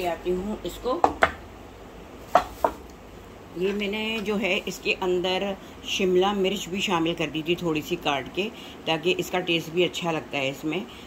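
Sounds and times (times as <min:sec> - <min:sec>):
utensil knocking on wood: 0:01.0 - 0:01.4, 0:02.3 - 0:02.8.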